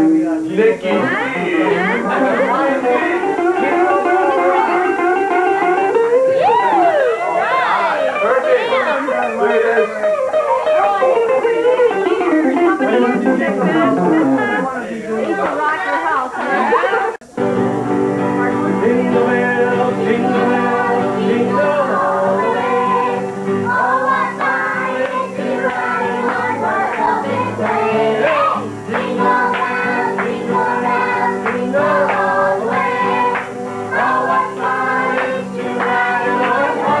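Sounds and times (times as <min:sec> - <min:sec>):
man singing: 0:00.0 - 0:05.0, 0:18.5 - 0:24.3, 0:33.9 - 0:37.0
voices: 0:00.0 - 0:17.2, 0:18.3 - 0:37.0
acoustic guitar: 0:00.0 - 0:37.0
electric guitar: 0:00.8 - 0:37.0.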